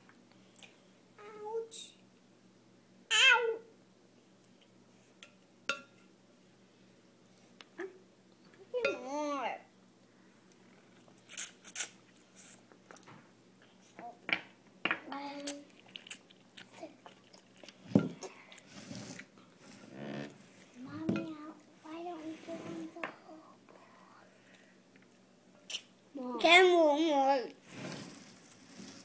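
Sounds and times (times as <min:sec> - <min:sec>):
toddler chewing and slurping: 0:10.9 - 0:13.1, 0:15.4 - 0:20.7.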